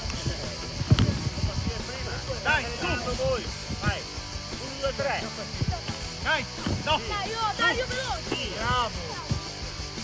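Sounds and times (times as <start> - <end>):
background music: 0.0 - 10.0
voices: 0.0 - 10.0.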